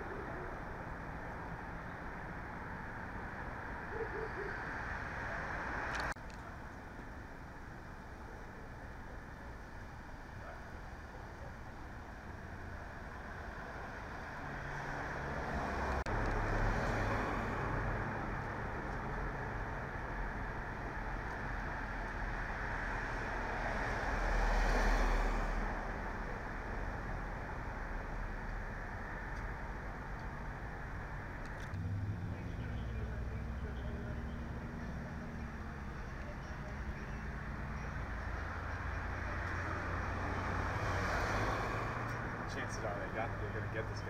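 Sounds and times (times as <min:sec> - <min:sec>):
vehicle passing: 0:12.6 - 0:20.4, 0:21.7 - 0:29.3, 0:31.1 - 0:44.0.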